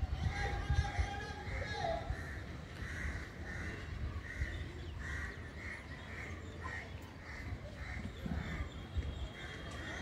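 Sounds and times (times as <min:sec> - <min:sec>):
birds calling: 0:00.4 - 0:10.0.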